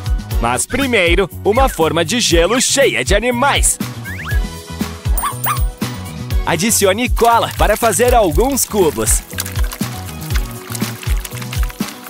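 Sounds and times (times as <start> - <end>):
upbeat background music: 2.4 - 12.0
small dog yipping: 5.2 - 5.8.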